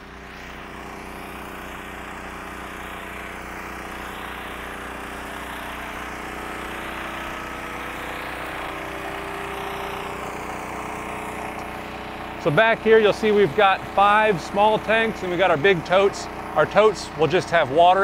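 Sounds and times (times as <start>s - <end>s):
portable generator running: 0.0s - 18.0s.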